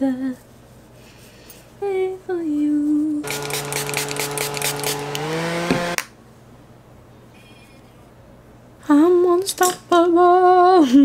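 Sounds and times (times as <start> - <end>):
handheld fan whirring: 3.2 - 6.1.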